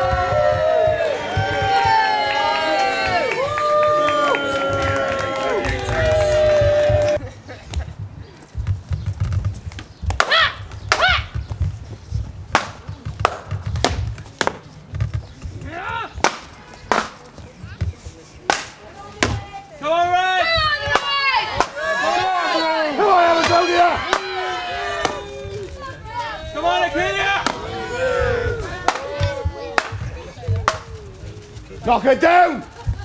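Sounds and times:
people crying out: 21.2 - 29.7.

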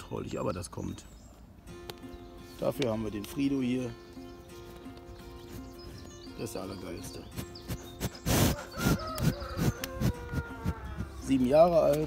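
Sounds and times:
bull snuffling: 4.6 - 6.2, 7.1 - 12.0.

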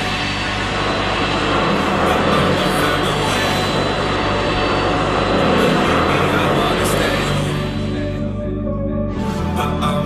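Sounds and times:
background music with low notes: 0.0 - 10.0
jet airliner engine rush: 0.0 - 10.0.

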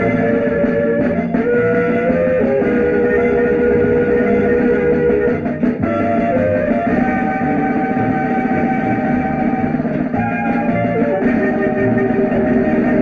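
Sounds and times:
instrumental film music: 0.0 - 13.0.

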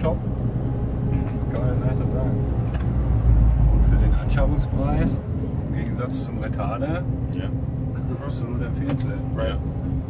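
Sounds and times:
truck diesel engine rumble: 0.0 - 10.0.

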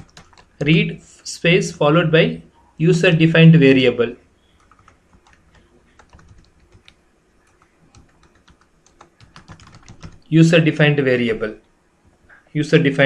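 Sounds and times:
computer keyboard typing: 0.0 - 0.8, 4.6 - 10.3.

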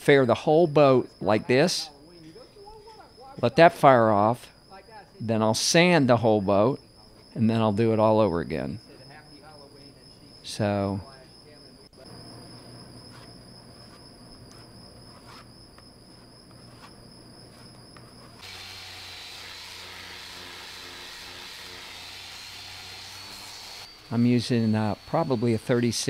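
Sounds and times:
air-powered orbital sander: 18.3 - 26.0.

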